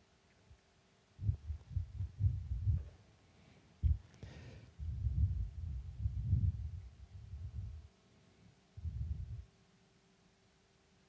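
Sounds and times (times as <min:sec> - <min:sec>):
muffled low thumps: 0:01.2 - 0:02.9, 0:03.8 - 0:04.0, 0:04.8 - 0:07.8, 0:08.8 - 0:09.4.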